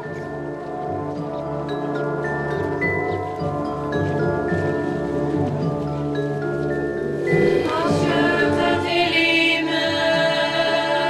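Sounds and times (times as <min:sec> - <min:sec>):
choir singing long notes: 0:07.2 - 0:11.0.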